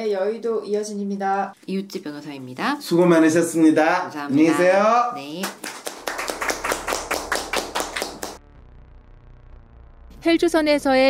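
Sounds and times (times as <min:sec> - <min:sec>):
hands clapping quickly: 0:05.4 - 0:08.4.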